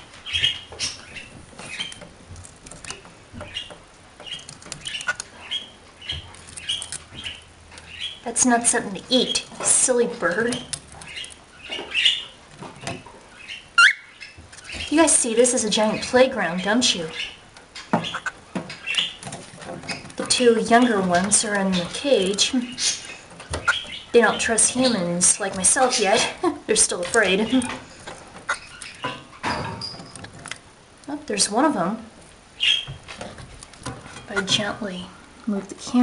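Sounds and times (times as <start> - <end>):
parrots chirping: 0.0 - 30.7, 32.5 - 35.1
bird claws clicking and scratching: 0.3 - 8.2, 8.8 - 13.5, 17.2 - 31.1, 33.0 - 34.8
short high bird chirp: 13.8 - 14.2.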